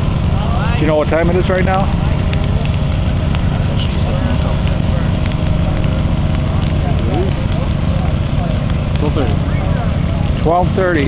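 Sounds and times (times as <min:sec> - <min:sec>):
crackles of burning grass: 0:00.0 - 0:11.0
low rumble of fire: 0:00.0 - 0:11.0.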